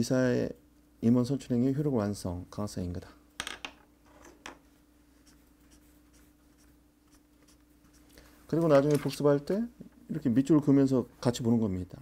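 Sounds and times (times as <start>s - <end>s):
low steady hum: 0.0s - 12.0s
highlighter strokes on paper: 5.1s - 8.1s.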